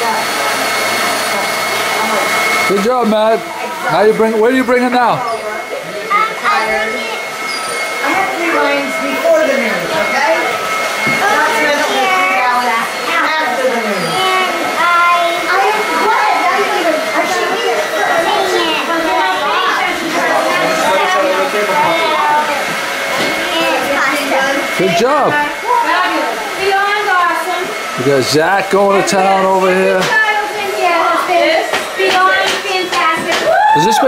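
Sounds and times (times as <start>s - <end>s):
crowd chatter: 0.0s - 34.0s.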